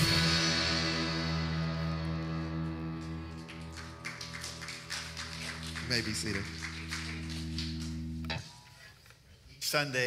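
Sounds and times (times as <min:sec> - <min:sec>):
guitar chord ringing: 0:05.3 - 0:08.7.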